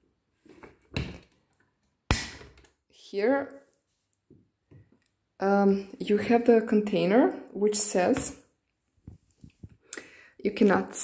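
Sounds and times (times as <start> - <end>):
sharp plastic snap: 2.1 - 2.8.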